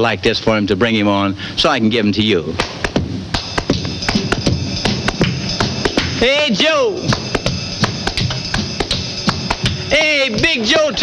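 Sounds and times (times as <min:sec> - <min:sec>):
rhythm and blues band playing: 0:02.6 - 0:11.0
sharp drum beats: 0:02.6 - 0:11.0.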